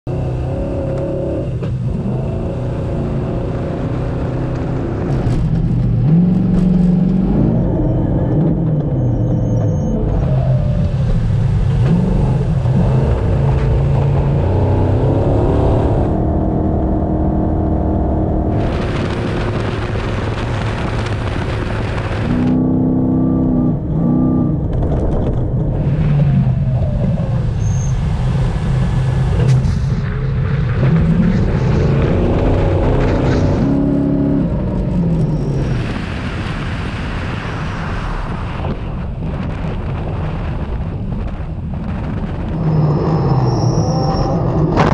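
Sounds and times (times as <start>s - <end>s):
rally car engine revving: 0.1s - 44.9s
rushing tyre sand and wind noise: 0.1s - 44.9s.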